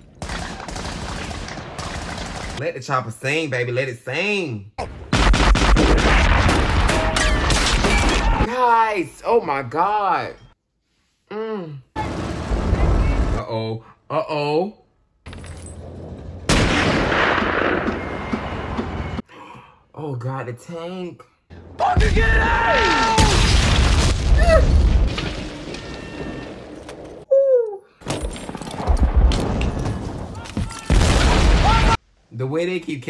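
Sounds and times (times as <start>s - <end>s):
gunfire and explosions: 0.0s - 2.7s, 4.8s - 8.5s, 12.0s - 13.5s, 15.3s - 19.2s, 21.6s - 27.2s, 28.0s - 32.0s
person shouting: 31.6s - 32.0s.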